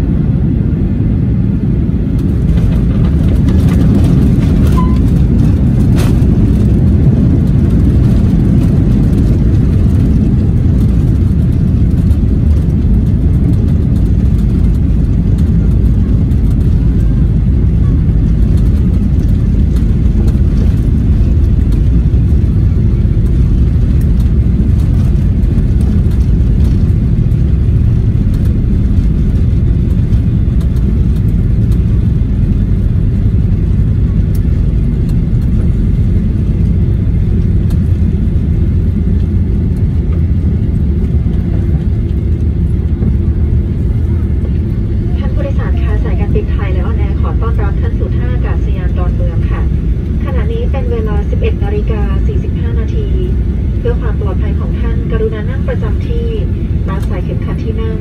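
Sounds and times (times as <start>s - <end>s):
aircraft cabin rumble: 0.0s - 58.0s.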